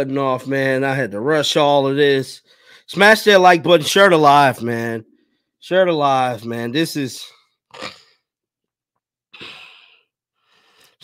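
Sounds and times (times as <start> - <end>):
man sighing: 9.3 - 10.1.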